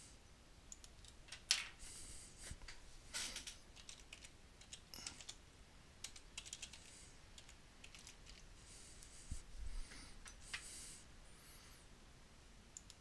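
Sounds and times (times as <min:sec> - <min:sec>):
typing on computer keyboard: 0:03.4 - 0:05.4, 0:06.0 - 0:08.5.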